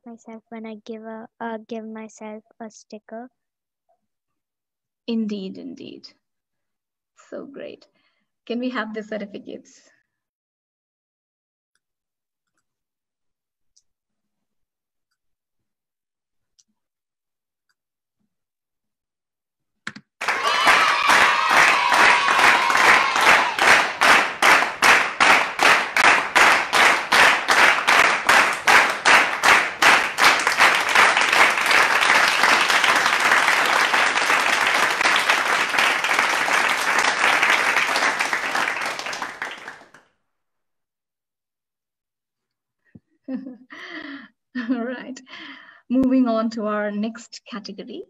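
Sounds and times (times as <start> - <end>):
rhythmic clapping in unison: 19.9 - 40.1
crowd applause: 20.2 - 40.0.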